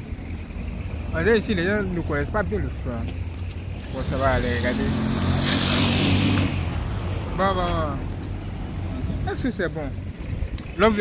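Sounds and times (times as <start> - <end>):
vehicle passing by: 3.8 - 7.5.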